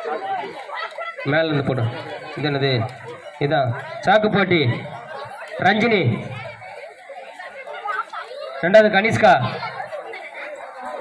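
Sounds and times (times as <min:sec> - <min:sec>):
crowd chatter: 0:00.0 - 0:11.0
man calling over loudspeaker: 0:01.3 - 0:05.0, 0:05.6 - 0:06.4, 0:08.6 - 0:09.8.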